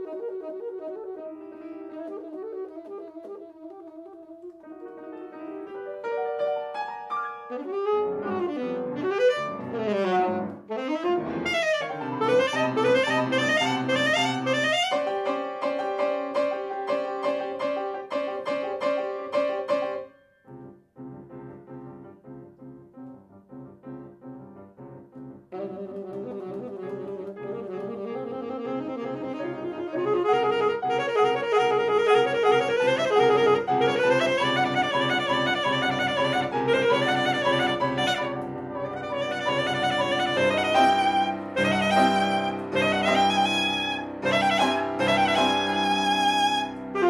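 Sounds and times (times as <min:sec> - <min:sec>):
soprano saxophone: 0:00.0 - 0:05.9, 0:07.4 - 0:16.5, 0:25.5 - 0:47.0
grand piano: 0:00.0 - 0:47.0.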